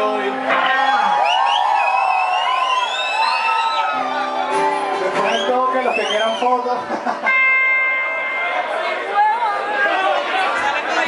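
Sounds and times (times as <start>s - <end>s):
audience cheering: 0.5s - 6.7s
whistles rising and falling: 1.2s - 4.0s.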